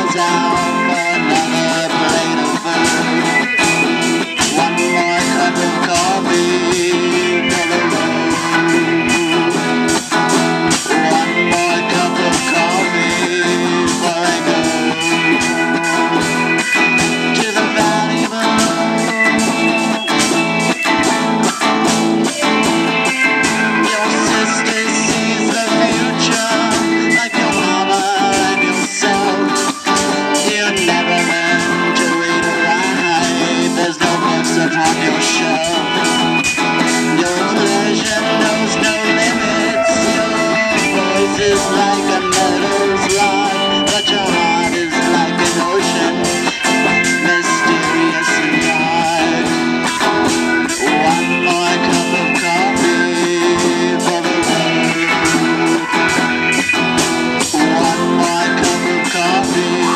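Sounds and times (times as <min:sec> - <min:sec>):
drum kit beat: 0:00.0 - 0:59.9
electric guitars: 0:00.0 - 0:59.9.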